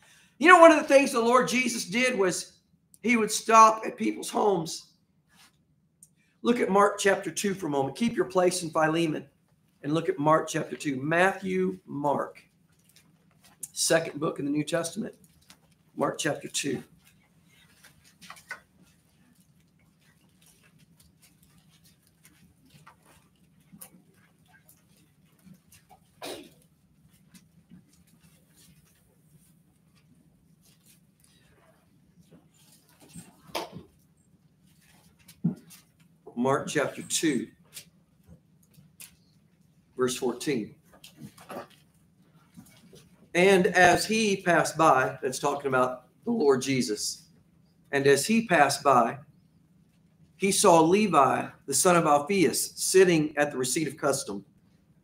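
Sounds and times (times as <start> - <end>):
pages rustling and clicking: 16.9 - 26.2.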